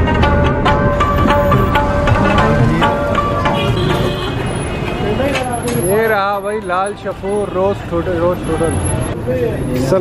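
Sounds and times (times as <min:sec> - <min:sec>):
traffic rumble: 0:00.0 - 0:10.0
man talking: 0:01.5 - 0:03.1.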